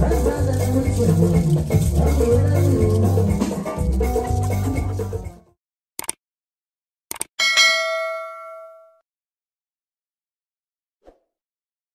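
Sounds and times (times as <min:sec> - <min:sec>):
button clicks: 0:06.0 - 0:06.2, 0:07.1 - 0:07.3
notification bell ding: 0:07.4 - 0:09.0.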